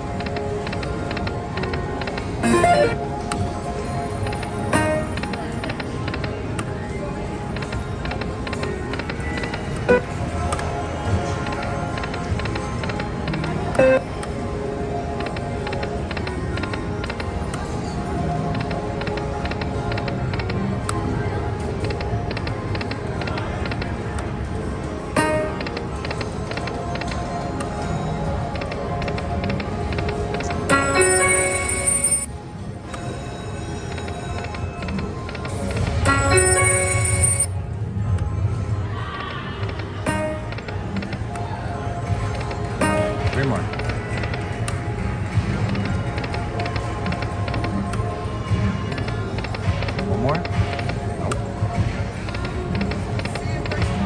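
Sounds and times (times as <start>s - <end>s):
slot machine game music: 0.0s - 20.9s, 24.8s - 37.8s, 40.0s - 41.3s, 42.0s - 48.3s
rapid electronic ticks: 0.1s - 3.0s, 28.5s - 30.7s, 42.2s - 44.8s, 45.4s - 48.0s, 48.9s - 54.0s
sustained electronic tones: 2.4s - 3.2s.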